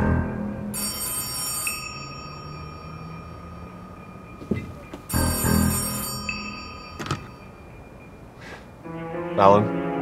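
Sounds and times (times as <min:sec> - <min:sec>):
telephone bell ringing: 0:00.8 - 0:08.4
moody background music: 0:02.5 - 0:10.0.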